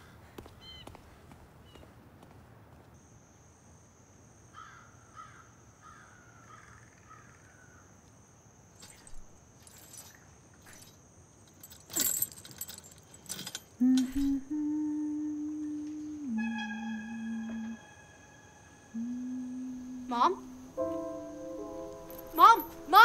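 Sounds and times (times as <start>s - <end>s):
metal gate rattling: 11.5s - 14.4s, 21.8s - 23.0s
low held music tone: 11.6s - 23.0s
steady high whine: 14.4s - 23.0s.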